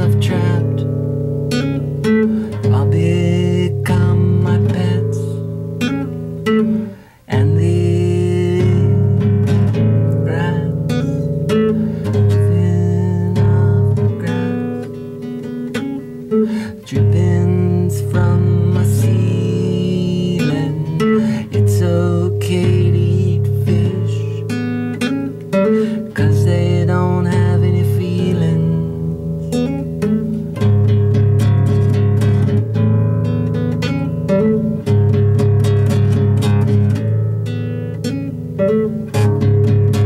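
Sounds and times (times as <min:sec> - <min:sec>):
acoustic guitar strumming chords: 0:00.0 - 0:40.0.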